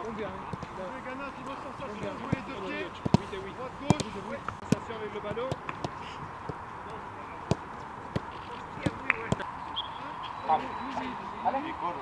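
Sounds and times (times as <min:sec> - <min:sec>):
football kicks: 0:00.3 - 0:06.7, 0:07.4 - 0:09.5.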